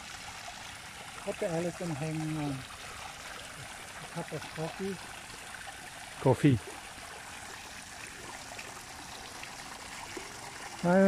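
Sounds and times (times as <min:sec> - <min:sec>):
fountain water splashing on stone: 0:00.0 - 0:11.0.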